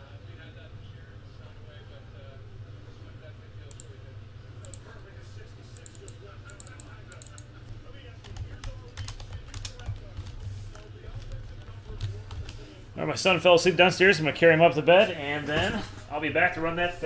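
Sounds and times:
faint voices: 0:00.0 - 0:13.3
low steady hum: 0:00.0 - 0:17.0.

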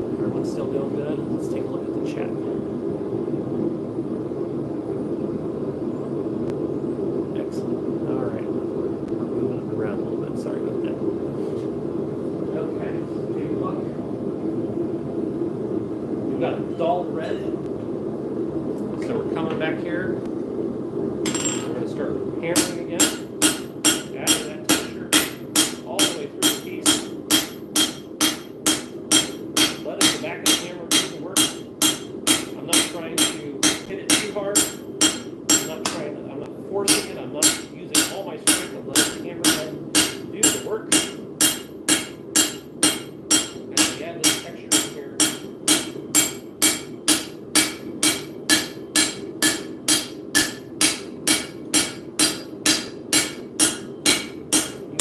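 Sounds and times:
hammer striking steel on anvil: 0:21.3 - 0:21.8, 0:22.6 - 0:36.1, 0:36.9 - 0:54.9.

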